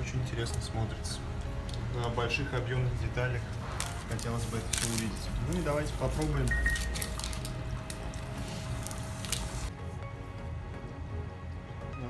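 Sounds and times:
background music: 0.0s - 12.0s
knife cutting crackling plastic film: 3.6s - 9.7s.

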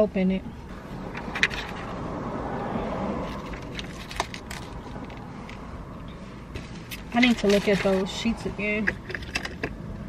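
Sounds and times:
bottle handling sounds: 6.6s - 9.8s.

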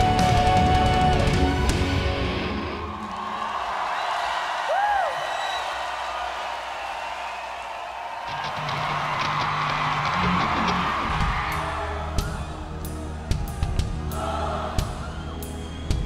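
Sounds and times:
crowd cheering: 0.0s - 16.0s.

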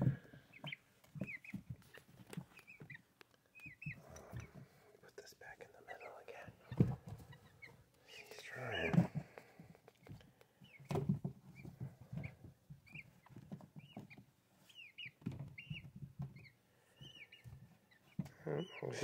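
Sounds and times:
chick peeping: 0.0s - 4.8s, 5.9s - 19.0s.

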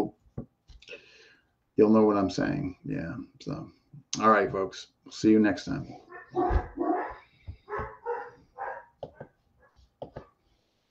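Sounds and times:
dog barking: 6.0s - 9.8s.

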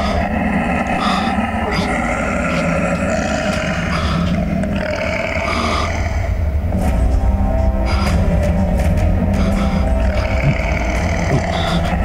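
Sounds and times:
tiger growling: 0.0s - 6.6s, 9.3s - 12.0s.

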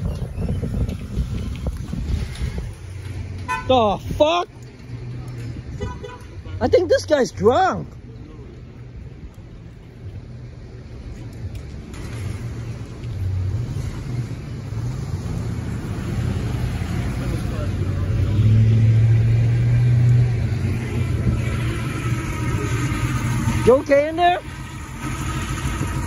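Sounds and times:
pickup truck engine passing: 11.8s - 26.0s.

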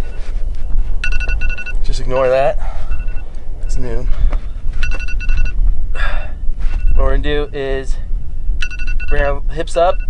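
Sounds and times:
electronic alarm beeping: 0.0s - 4.1s, 4.8s - 5.6s, 6.7s - 7.6s, 8.6s - 10.0s
low rumble: 0.0s - 10.0s.

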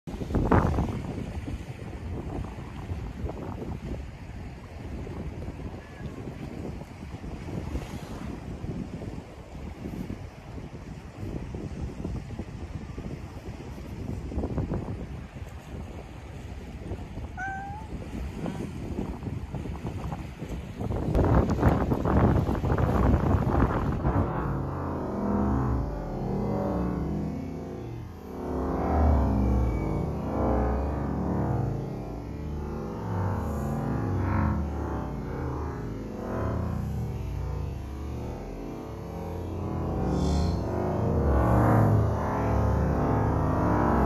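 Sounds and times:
wind rumbling on microphone: 0.0s - 44.0s
sea waves washing: 17.2s - 19.6s, 21.2s - 44.0s
short rising animal call: 17.4s - 18.0s, 39.8s - 42.5s.

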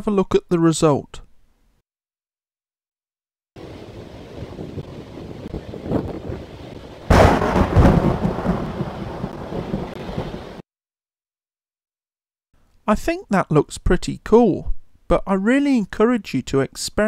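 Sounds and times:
thunder rumbling and cracking: 3.6s - 10.6s.

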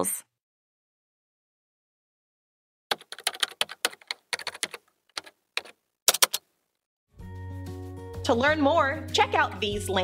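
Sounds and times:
keyboard typing: 2.9s - 6.5s.

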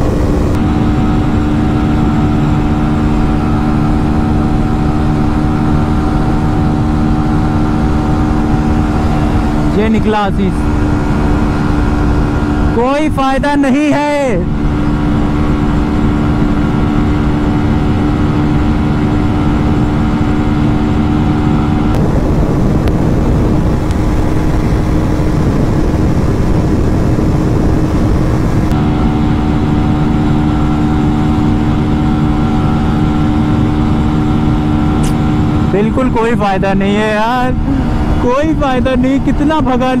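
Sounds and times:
motorcycle engine at full throttle: 0.0s - 40.0s
wind rush on microphone: 0.0s - 40.0s.

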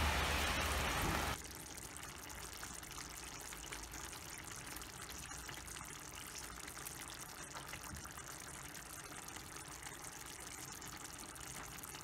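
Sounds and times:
curry simmering with small pops: 1.3s - 12.0s.

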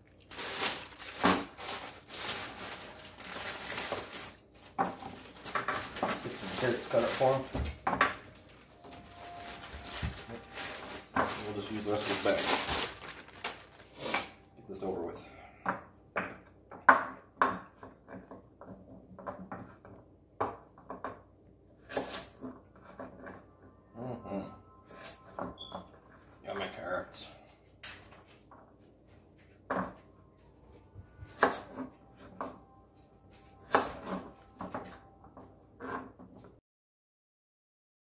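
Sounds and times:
plastic bag crinkling: 0.0s - 14.5s
knife chopping on wooden board: 31.4s - 31.7s.

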